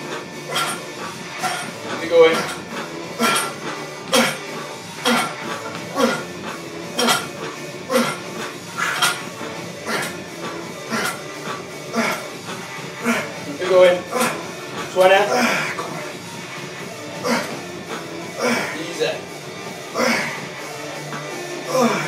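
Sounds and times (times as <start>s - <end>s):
background music: 0.0s - 22.0s
lifter grunting: 2.0s - 9.2s, 9.8s - 16.1s, 17.1s - 19.3s, 19.9s - 20.5s, 21.1s - 22.0s.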